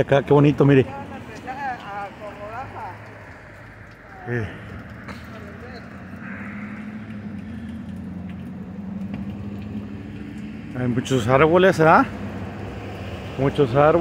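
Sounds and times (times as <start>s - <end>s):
motor vehicle engine hum: 0.0s - 14.0s
street ambience: 0.0s - 14.0s.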